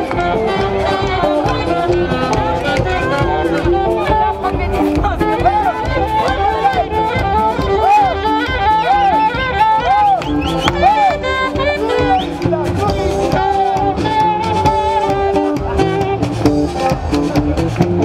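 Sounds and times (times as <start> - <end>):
held melody line: 0.0 - 18.0
live band music: 0.0 - 18.0.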